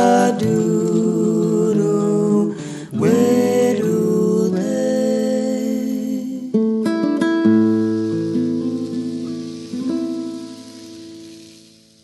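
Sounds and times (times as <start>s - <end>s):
acoustic guitar chords: 0.0s - 12.0s
plucked guitar notes: 6.6s - 11.7s.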